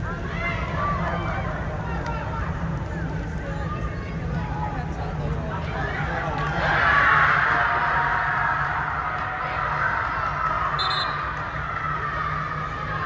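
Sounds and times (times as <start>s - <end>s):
short high whistle blast: 10.8s - 11.2s.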